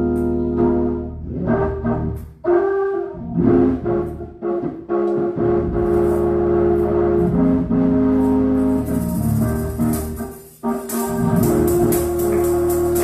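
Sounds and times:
church organ chords: 0.0s - 13.0s.

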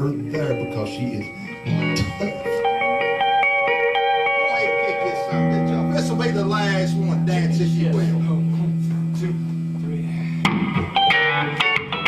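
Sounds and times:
electric guitar single notes: 0.0s - 12.0s.

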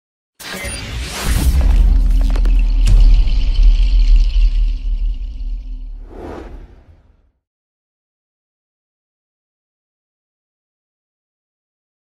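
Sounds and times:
whoosh: 6.0s - 7.2s.

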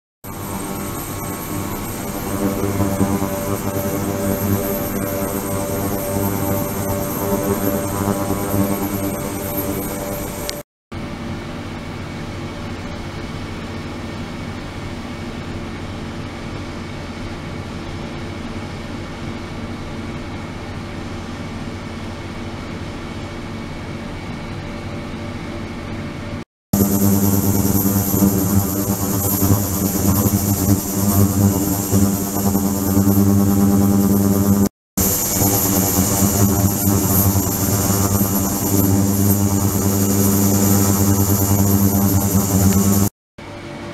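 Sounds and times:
high whine: 0.2s - 10.6s, 26.7s - 43.2s
ultrasonic cleaner buzzing hum: 0.3s - 10.6s, 26.8s - 43.2s.

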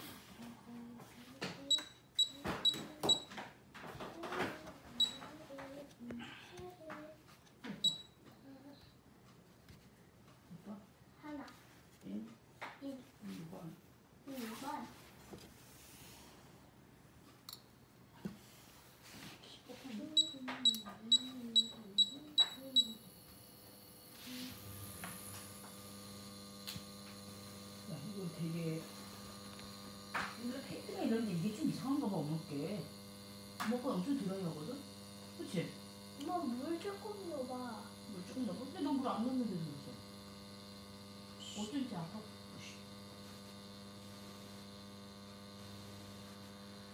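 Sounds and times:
cooktop control beeps: 1.6s - 3.4s, 4.9s - 5.4s, 7.7s - 8.3s, 19.9s - 23.1s
electrical hum with high whine: 16.7s - 46.9s.

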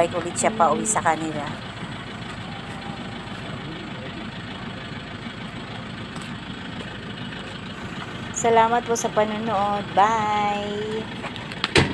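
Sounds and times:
vehicle engine idling: 0.0s - 11.9s.

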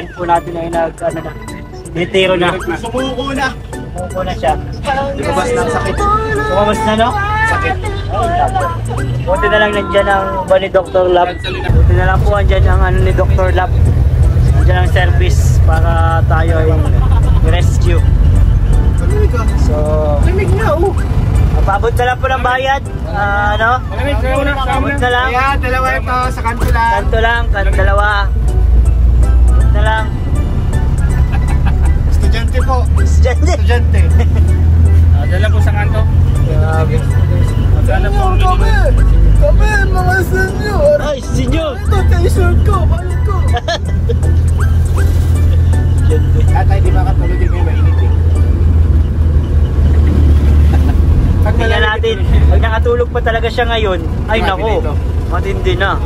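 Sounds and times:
vehicle engine droning: 0.0s - 56.0s
voices: 0.0s - 56.0s.

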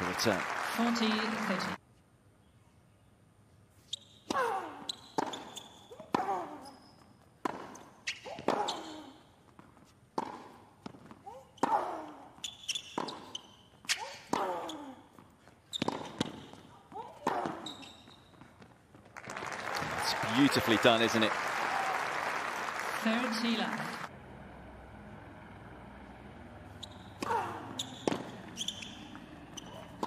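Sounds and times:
crowd applause: 0.0s - 1.8s, 19.2s - 24.1s
shoe squeaks: 3.8s - 18.8s, 26.7s - 30.0s.

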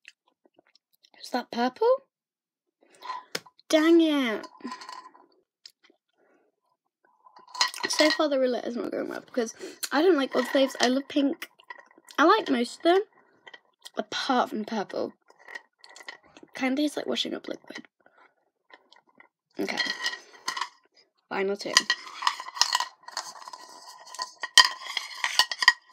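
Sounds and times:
girl speaking: 1.2s - 2.0s, 3.7s - 4.7s, 7.8s - 11.5s, 12.1s - 13.1s, 13.9s - 15.1s, 16.6s - 17.8s, 19.6s - 19.8s, 21.3s - 21.9s.

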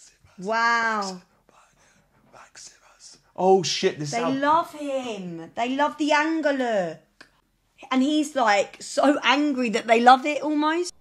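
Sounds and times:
faint whispered breathy sounds: 0.0s - 3.8s
person saying wow: 0.4s - 1.2s, 3.4s - 4.6s.

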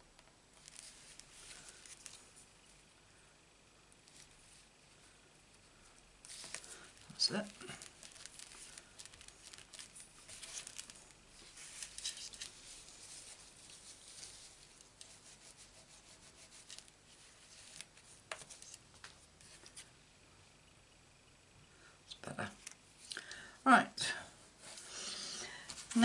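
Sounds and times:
fingers rubbing paper: 12.7s - 16.9s.

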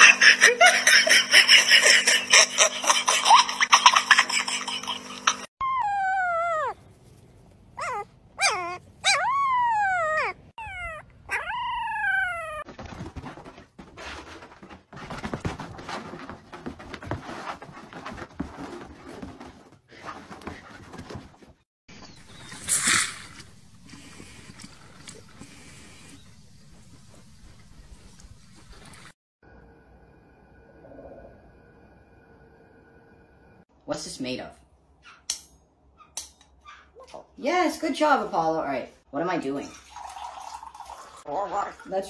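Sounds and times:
puppy whimpering: 5.6s - 6.8s, 7.8s - 12.7s.

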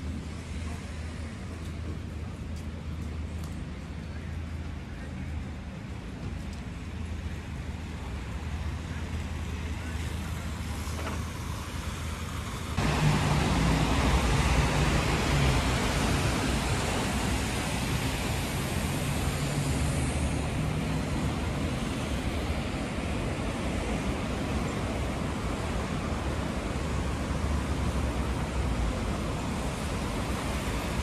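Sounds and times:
traffic on a wet road: 0.0s - 31.0s.

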